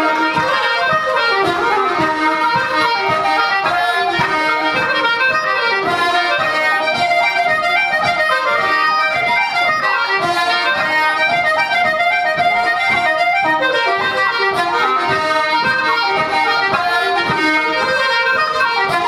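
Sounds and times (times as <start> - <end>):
accordion: 0.0 - 19.0
fiddle: 0.0 - 19.0
flute: 0.0 - 19.0.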